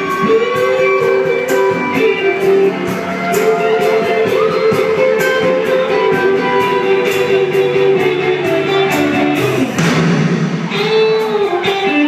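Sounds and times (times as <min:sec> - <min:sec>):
electric guitar bending notes: 0:00.0 - 0:12.0
live blues band: 0:00.0 - 0:12.0.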